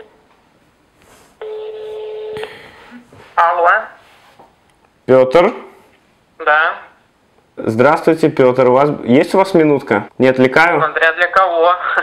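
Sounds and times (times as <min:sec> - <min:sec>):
telephone ringback tone: 0:01.4 - 0:02.6.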